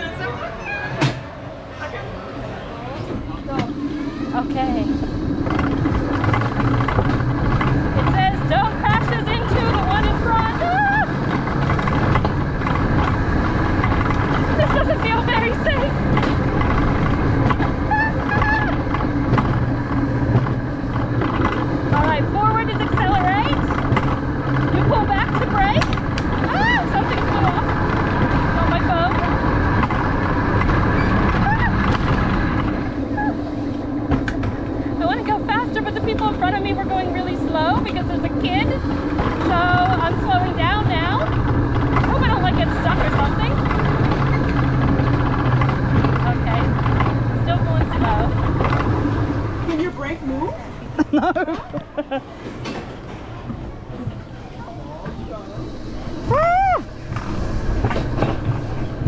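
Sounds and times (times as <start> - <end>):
sled rumbling on metal track: 0.0 - 59.0.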